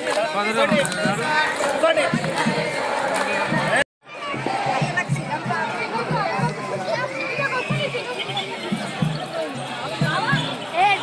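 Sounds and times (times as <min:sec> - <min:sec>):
crowd talking and calling: 0:00.0 - 0:11.0
steady drumming: 0:00.6 - 0:11.0.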